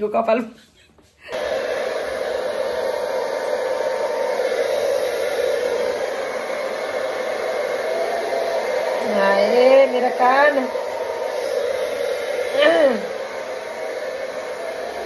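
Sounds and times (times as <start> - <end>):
hair dryer blowing: 1.2 - 15.0.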